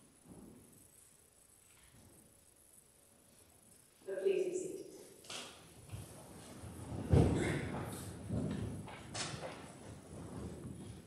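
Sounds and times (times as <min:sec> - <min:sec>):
footsteps on church floor: 0:05.7 - 0:11.0.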